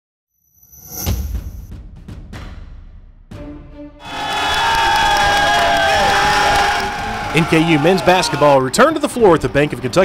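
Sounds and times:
long held shouts: 4.0s - 8.6s
arena crowd cheering and yelling: 4.0s - 10.0s.

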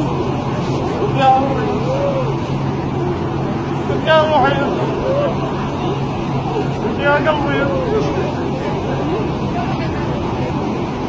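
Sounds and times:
low rumble and hum: 0.0s - 11.0s
people's voices: 0.0s - 11.0s.

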